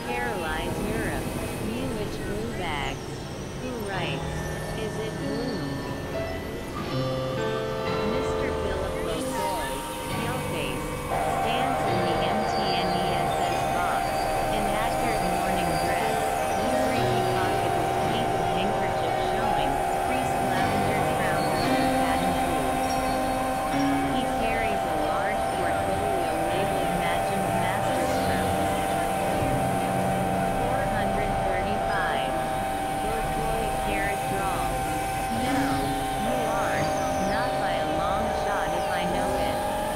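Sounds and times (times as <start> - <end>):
indistinct voices: 0.0 - 7.1, 7.9 - 39.9
synthesizer drone: 0.0 - 39.9
warbling gliding electronic squiggles: 8.0 - 39.9.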